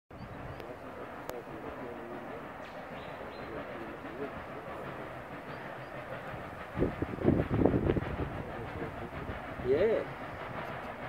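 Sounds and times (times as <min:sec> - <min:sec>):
train rumble: 0:00.1 - 0:11.0
distant voices murmuring: 0:00.2 - 0:11.0.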